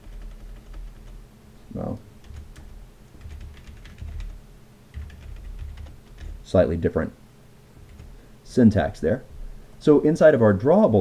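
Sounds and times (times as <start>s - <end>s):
computer keyboard typing: 0.0s - 1.2s, 2.2s - 6.4s, 7.8s - 8.2s.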